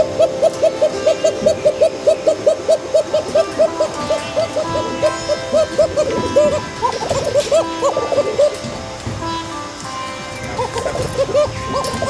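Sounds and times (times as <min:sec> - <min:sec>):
pigeons cooing: 0:00.0 - 0:09.0, 0:10.4 - 0:12.0
background music with held notes: 0:00.0 - 0:12.0.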